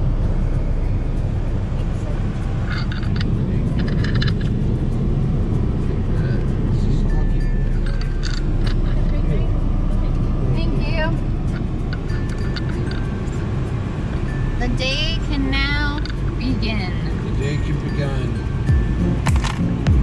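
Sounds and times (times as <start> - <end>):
car idling rumble: 0.0 - 20.0
music playing: 0.0 - 20.0.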